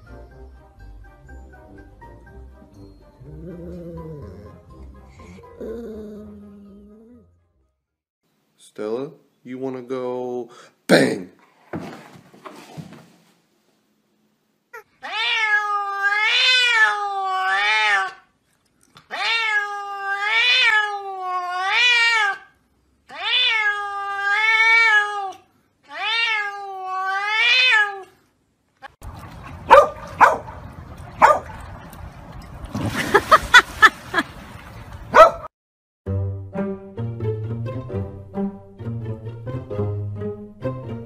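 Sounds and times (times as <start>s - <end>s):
cat meowing: 14.8s - 18.2s, 19.1s - 22.5s, 23.1s - 28.1s.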